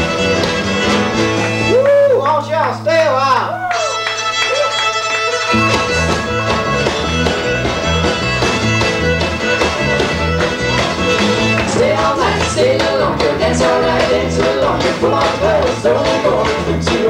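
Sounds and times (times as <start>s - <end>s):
bass and drums beat: 0.0s - 17.0s
fiddle playing lead line: 0.0s - 17.0s.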